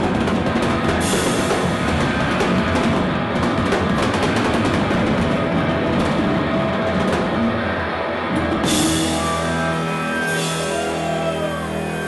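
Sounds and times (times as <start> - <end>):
drum hits and cymbal crashes: 0.0 - 5.3, 8.4 - 12.0
electric guitar: 0.0 - 12.0
rock band playing: 0.0 - 12.0.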